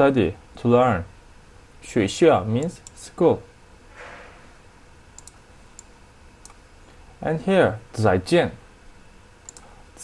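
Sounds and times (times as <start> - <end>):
computer mouse clicks: 5.2 - 6.6, 9.4 - 9.7.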